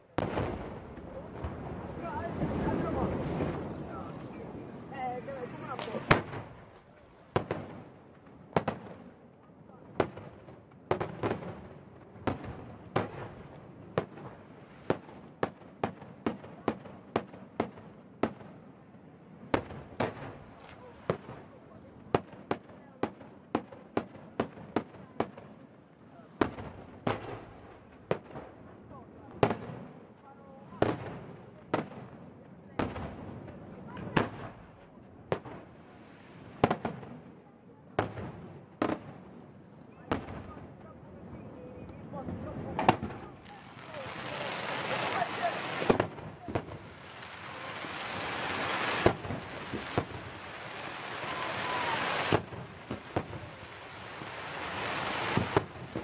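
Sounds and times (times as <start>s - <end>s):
fireworks bursting with sharp bangs: 0.0s - 56.0s.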